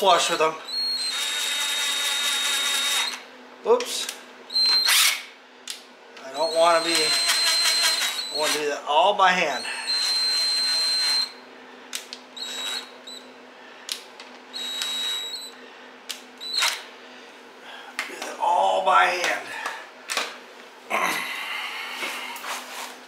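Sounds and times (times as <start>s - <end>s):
cordless drill spinning: 0.2s - 3.3s, 4.5s - 5.3s, 6.3s - 8.7s, 9.6s - 11.4s, 12.4s - 13.2s, 14.5s - 15.6s, 16.4s - 16.8s.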